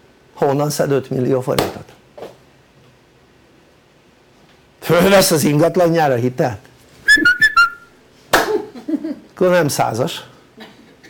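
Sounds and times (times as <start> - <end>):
man whistling short notes: 7.1 - 7.9.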